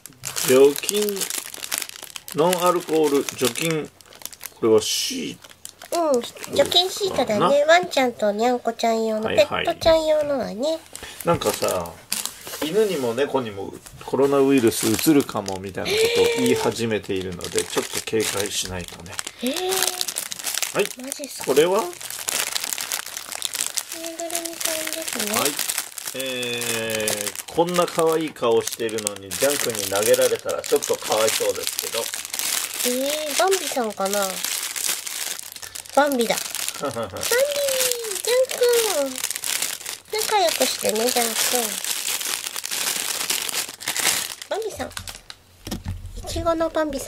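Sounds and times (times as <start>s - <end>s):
plastic bag crinkling: 0.0s - 8.6s, 9.3s - 47.0s.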